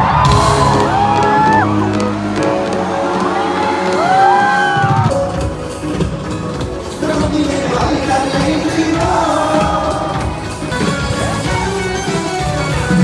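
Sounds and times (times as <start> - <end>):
crowd whooping and shouting: 0.0 - 5.4
live concert music over speakers: 0.0 - 13.0.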